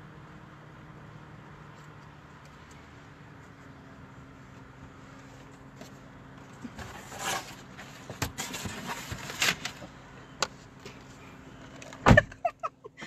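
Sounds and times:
rustling inside a car: 0:01.6 - 0:13.0.

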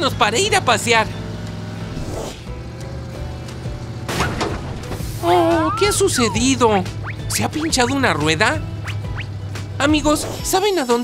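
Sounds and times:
cartoon background music: 0:04.1 - 0:11.0
cartoon tyre bursting effect: 0:05.2 - 0:06.5.

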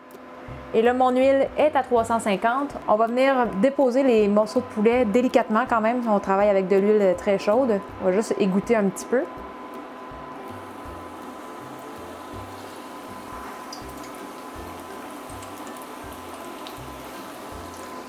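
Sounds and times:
background music with bass line: 0:09.3 - 0:17.9
oil sizzling in a wok: 0:10.5 - 0:18.0.

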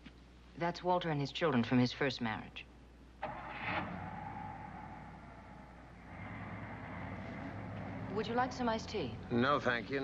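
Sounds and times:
car engine starting and running: 0:03.2 - 0:10.0.

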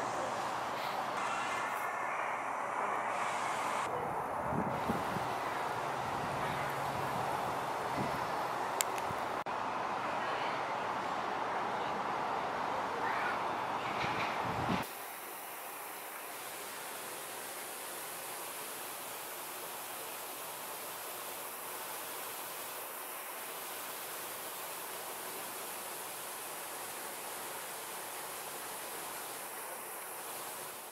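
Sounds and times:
steady high hiss: 0:00.0 - 0:13.4, 0:14.8 - 0:30.9.

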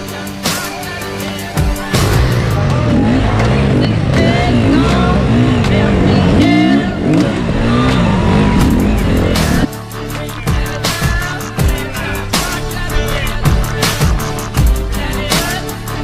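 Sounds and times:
music: 0:00.0 - 0:16.0
motorcycle engine revving: 0:01.7 - 0:09.8.

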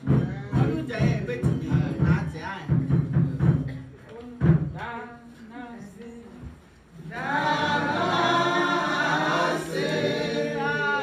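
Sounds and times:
group singing in unison: 0:07.0 - 0:11.0.

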